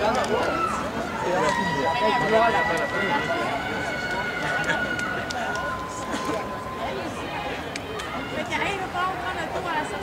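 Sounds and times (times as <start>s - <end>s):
indistinct chatter of people: 0.0s - 10.0s.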